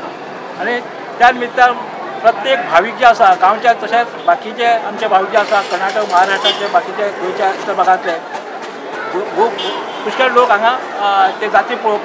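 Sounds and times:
open-air background noise: 0.0s - 12.0s
man speaking: 0.6s - 8.2s, 9.1s - 12.0s.

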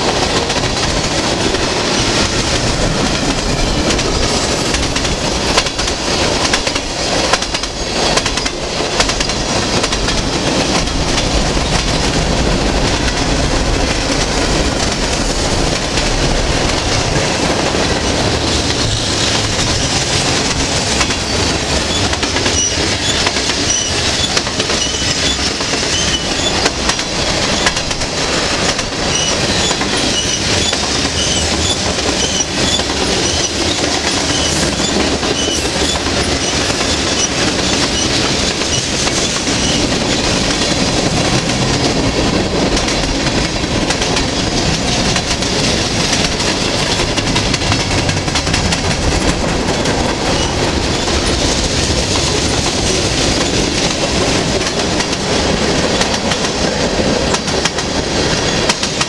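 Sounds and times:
freight train cars rolling past: 0.0s - 59.0s
wheels clattering over rail joints: 0.0s - 59.0s.

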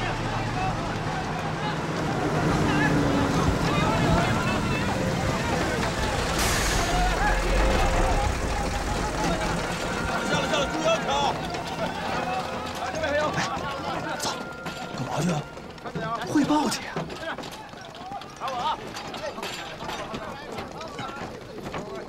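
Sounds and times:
truck engines rumbling: 0.0s - 22.0s.

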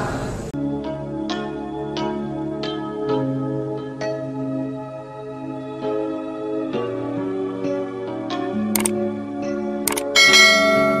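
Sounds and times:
soft background music: 0.6s - 11.0s
sharp click: 8.8s - 9.0s, 9.9s - 10.2s
bright bell chime: 10.2s - 11.0s.

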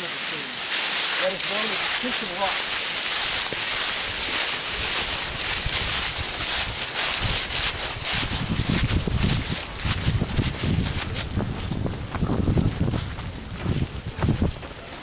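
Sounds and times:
footsteps crunching through dry leaves: 0.0s - 15.0s
wind rumbling on microphone: 2.6s - 15.0s.

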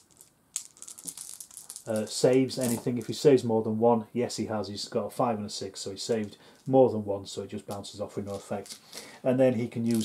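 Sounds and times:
dice rattling in a hand: 0.0s - 3.0s, 7.8s - 8.8s.

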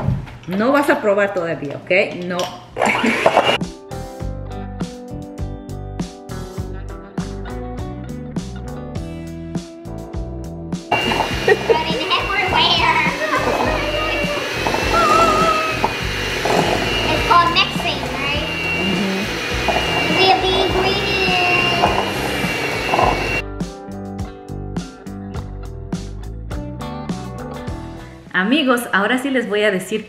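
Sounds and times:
electric hand mixer whining: 2.8s - 3.6s, 10.9s - 23.4s
guitar background music: 3.6s - 28.4s
children talking: 11.0s - 15.9s, 16.6s - 23.3s.

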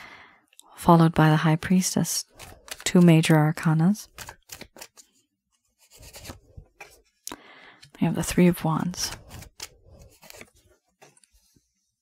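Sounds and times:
card rustling on cloth table: 2.3s - 3.2s, 4.0s - 7.2s, 8.8s - 12.0s.

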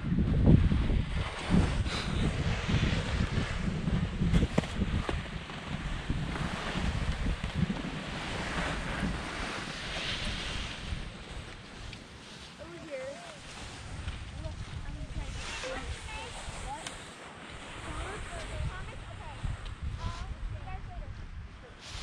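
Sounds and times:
wind buffeting microphone: 0.0s - 22.0s.

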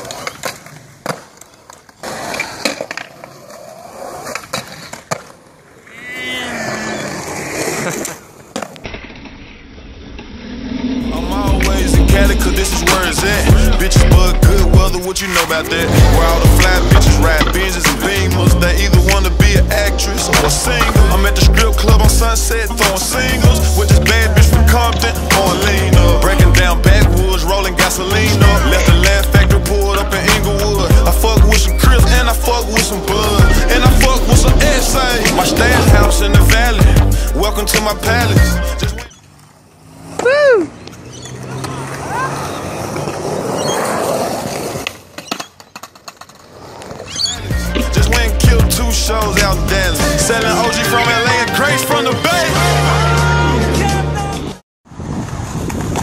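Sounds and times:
skateboard clacking on ground: 0.0s - 5.6s, 7.6s - 9.5s, 41.6s - 48.2s
skateboard wheels rolling on concrete: 0.0s - 56.0s
hip hop track with rap vocals: 11.1s - 39.2s, 47.4s - 54.6s
deep sliding bass drum hits: 15.8s - 17.9s, 33.4s - 37.2s.

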